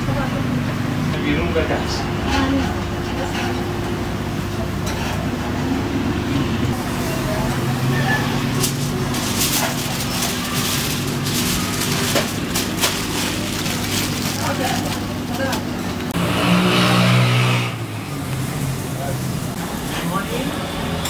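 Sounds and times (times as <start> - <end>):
kitchen machine hum: 0.0 - 21.0
aluminium foil crinkling: 8.5 - 15.8.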